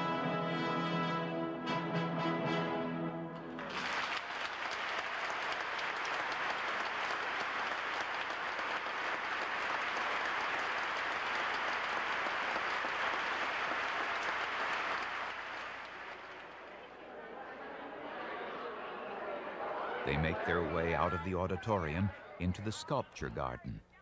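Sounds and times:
large audience applauding: 3.5 - 22.0.

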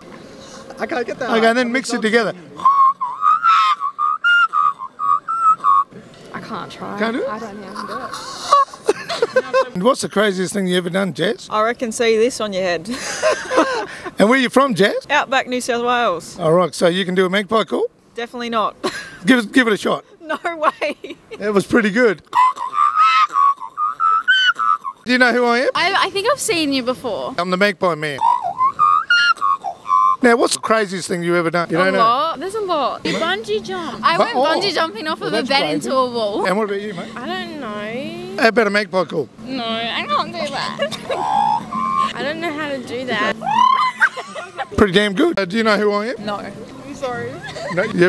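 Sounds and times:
person whistling bird call: 2.6 - 5.9, 22.3 - 25.0, 28.2 - 30.2
person imitating bird call: 22.3 - 25.1, 28.2 - 30.2, 40.6 - 42.4, 43.2 - 44.1.

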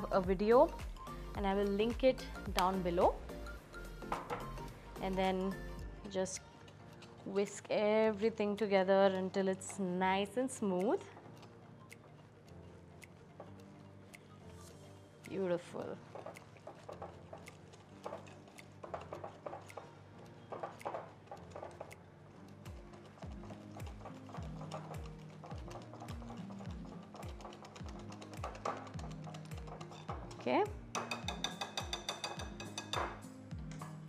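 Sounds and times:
background music with steady beat: 0.0 - 34.0
whisk beating batter in glass bowl: 15.9 - 32.9.

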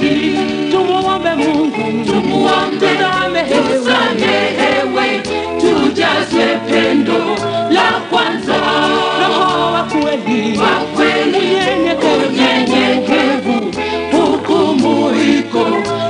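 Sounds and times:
group singing gospel in harmony: 0.0 - 16.0.

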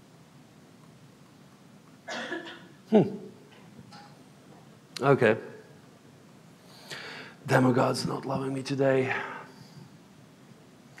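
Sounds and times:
man saying hmm: 2.9 - 3.3.

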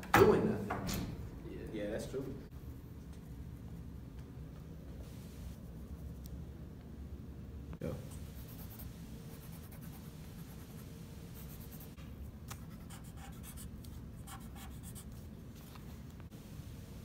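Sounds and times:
low room hum: 0.0 - 17.0
pencil and pen scratching on paper: 8.1 - 15.3.

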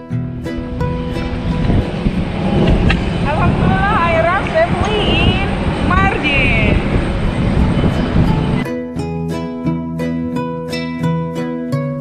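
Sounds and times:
low outdoor rumble: 0.2 - 8.6.

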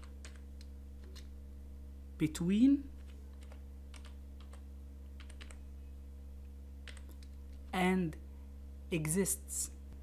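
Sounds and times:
keyboard keystrokes: 0.0 - 1.3
low electrical hum: 0.0 - 10.0.

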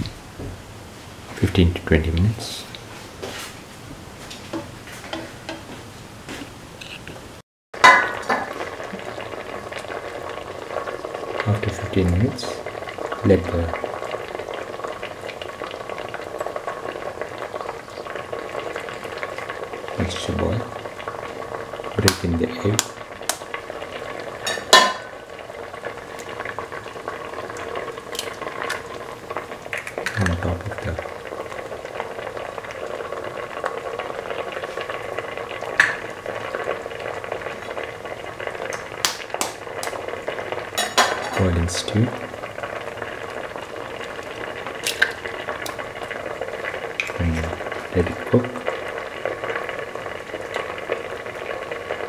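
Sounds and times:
stew bubbling in a pot: 7.8 - 52.0
eggs cracking: 27.5 - 30.8, 38.5 - 41.6, 43.0 - 48.8.

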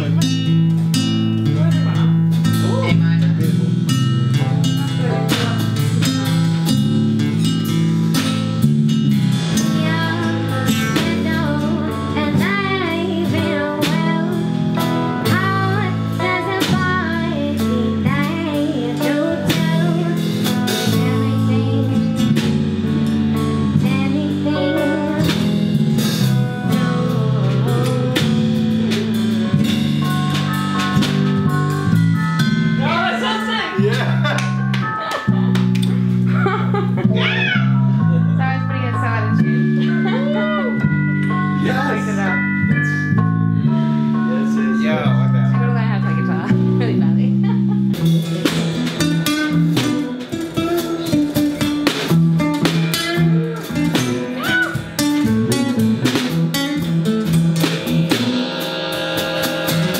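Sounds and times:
acoustic guitar: 0.0 - 59.9
person singing: 9.6 - 22.4, 23.6 - 25.5, 26.4 - 29.6.

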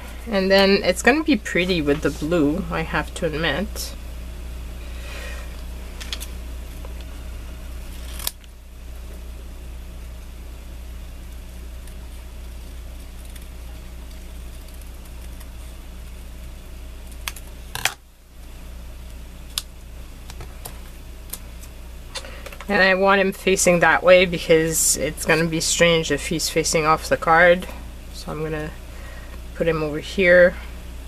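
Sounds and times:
steady low hum: 0.0 - 31.0
scissors snipping paper: 11.8 - 15.7.

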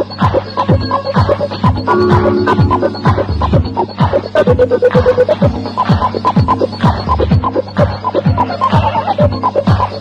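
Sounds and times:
kick drum: 0.0 - 9.9
electronic dance music: 0.0 - 10.0
synth stabs: 1.7 - 4.4.

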